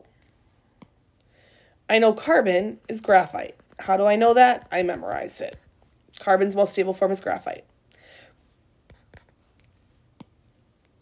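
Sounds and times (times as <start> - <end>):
stylus tapping and scratching: 1.9 - 6.6, 8.8 - 11.0.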